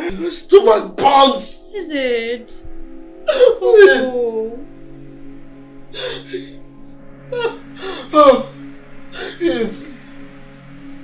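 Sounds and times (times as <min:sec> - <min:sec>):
background music: 0:00.0 - 0:11.0
man groaning in pain: 0:03.2 - 0:04.6.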